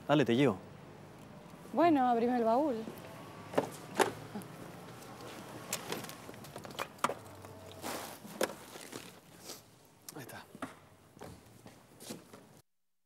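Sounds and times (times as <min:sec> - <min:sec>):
bicycle clicks and knocks: 0:05.7 - 0:07.5.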